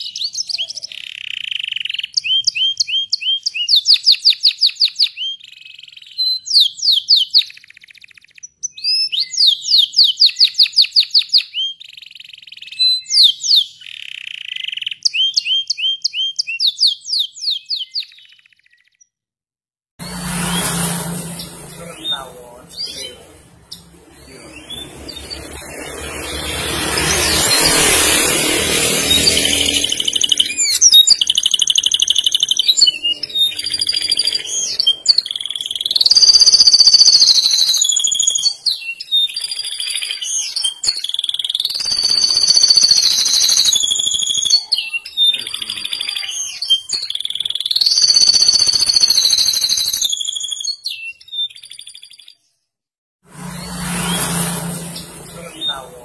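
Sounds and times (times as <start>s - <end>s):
canary singing trills: 0.0s - 19.1s, 20.6s - 52.5s
broad rush of noise: 23.1s - 30.2s.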